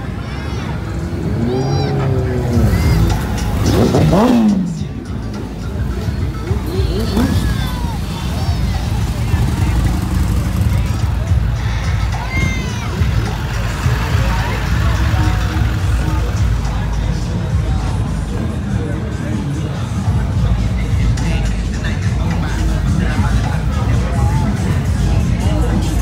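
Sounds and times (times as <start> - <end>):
music: 0.0 - 26.0
street traffic rumble: 0.0 - 26.0
voices: 0.0 - 26.0.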